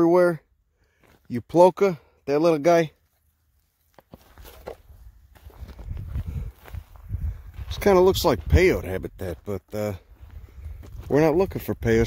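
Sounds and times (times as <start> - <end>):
footsteps on gravel: 3.0 - 11.6.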